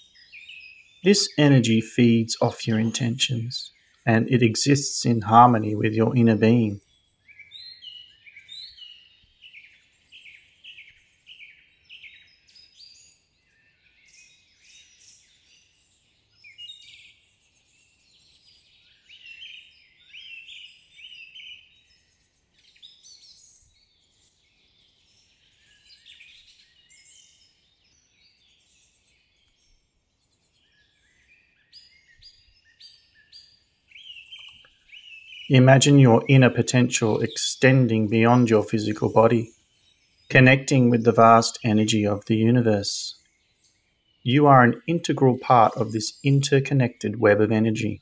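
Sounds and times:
small birds chirping and trilling: 0.0 - 48.0.

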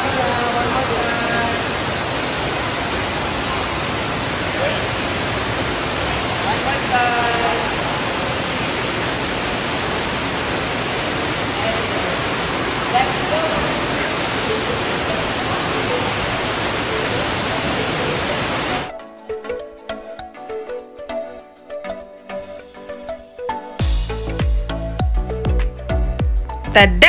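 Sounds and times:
water pouring into pool: 0.0 - 18.9.

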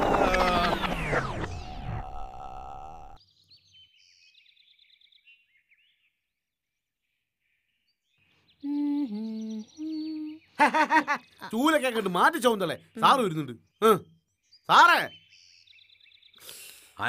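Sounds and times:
person humming a tune: 8.6 - 10.5
faint high chirps: 8.6 - 10.7.

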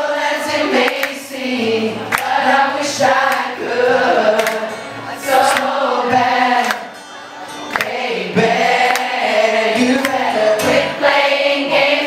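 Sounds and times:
audience singing along: 0.0 - 12.0
strummed acoustic guitar: 0.3 - 12.0
man singing: 2.9 - 6.6, 8.2 - 11.0.

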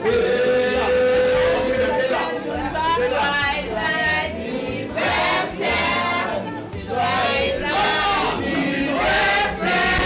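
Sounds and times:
choir singing gospel music: 0.0 - 10.0.

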